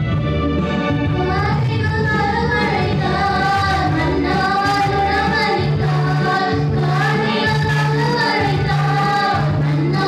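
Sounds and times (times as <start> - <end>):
electronic keyboard accompaniment: 0.0 - 10.0
women singing gospel song: 1.2 - 10.0.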